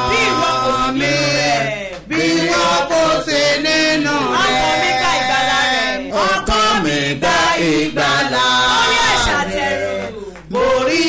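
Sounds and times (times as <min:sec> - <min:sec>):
voices chanting: 0:00.0 - 0:11.0.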